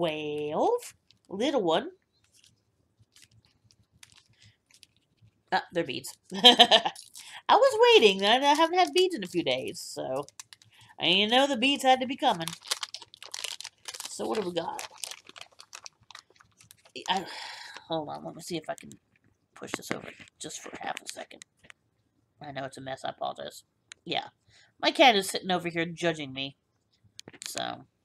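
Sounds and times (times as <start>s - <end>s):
packet crinkling: 2.2s - 5.2s, 7.8s - 19.0s, 19.8s - 21.7s, 27.2s - 27.7s.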